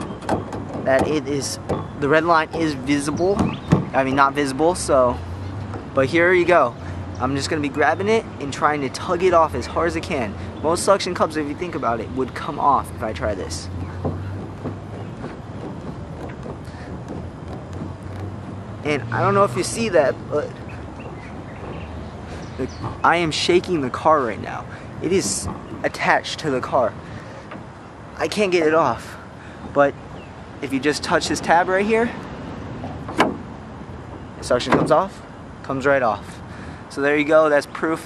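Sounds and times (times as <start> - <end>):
camera mount knocks and creaks: 0.0 - 2.6.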